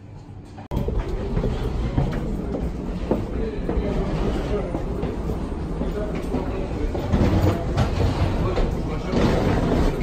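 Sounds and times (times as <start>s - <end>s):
low walkway rumble: 0.0s - 10.0s
footsteps on hollow floor: 0.1s - 10.0s.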